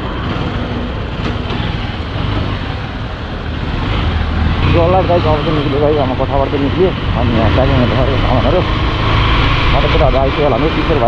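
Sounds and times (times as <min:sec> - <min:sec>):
motorcycle engine running: 0:00.0 - 0:11.0
wind rush and road noise: 0:00.0 - 0:11.0.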